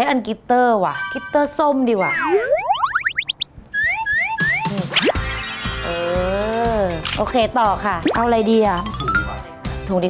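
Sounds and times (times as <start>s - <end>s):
bouncy chirps: 0.9s - 5.7s
falling whistle effect: 2.2s - 5.5s.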